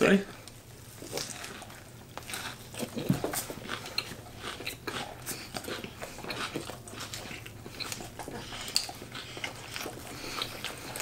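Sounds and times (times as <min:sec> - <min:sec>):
people chewing food: 0:00.4 - 0:11.0.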